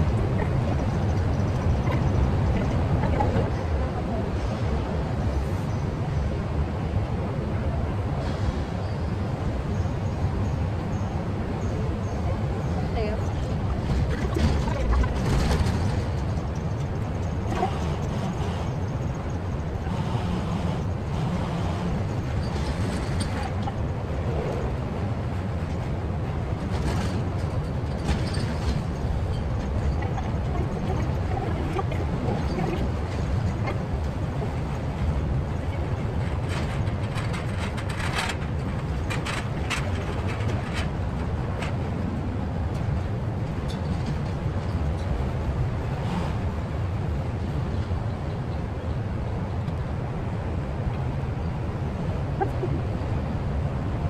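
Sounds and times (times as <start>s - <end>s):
distant road traffic rumble: 0.0s - 54.0s.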